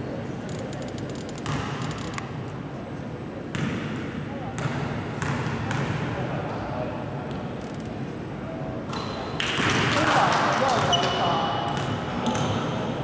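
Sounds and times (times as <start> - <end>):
people talking: 9.9 - 12.6.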